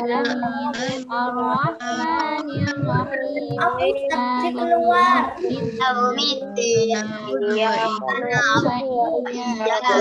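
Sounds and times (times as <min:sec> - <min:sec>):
children chanting a prayer: 0:00.0 - 0:10.0.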